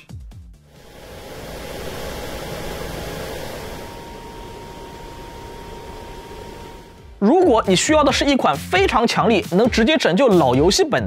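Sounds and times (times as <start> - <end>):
cooling fans rushing air: 0.7 - 7.2
faint thin air whistle: 0.8 - 7.2.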